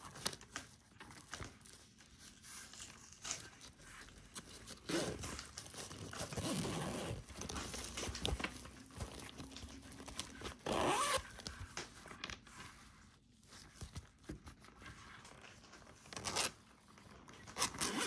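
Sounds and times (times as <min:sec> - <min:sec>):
fabric rustling: 0:00.0 - 0:18.0
zipper rasping: 0:06.2 - 0:07.6, 0:10.4 - 0:11.4, 0:17.6 - 0:18.0.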